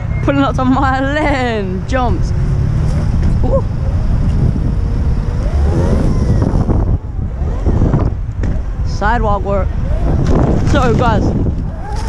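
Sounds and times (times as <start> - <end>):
wind buffeting microphone: 0.0 - 12.0
electric motor whine: 2.4 - 8.4.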